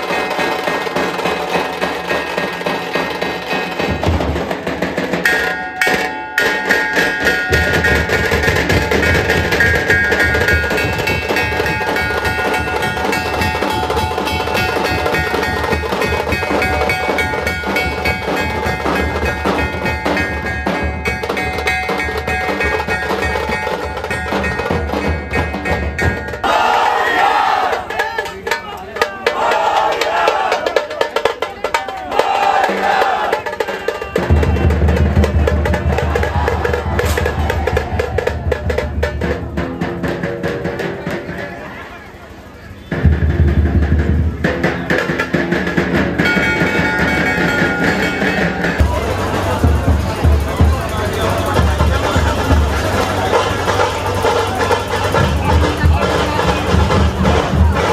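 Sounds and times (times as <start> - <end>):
crowd shouting: 0.0 - 4.6, 7.3 - 22.1, 26.0 - 43.6, 44.6 - 57.9
barrel drums beating fast: 0.0 - 57.9.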